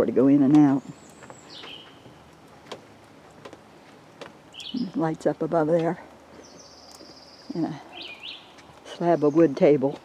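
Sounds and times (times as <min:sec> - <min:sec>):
birds calling: 0:00.5 - 0:10.0.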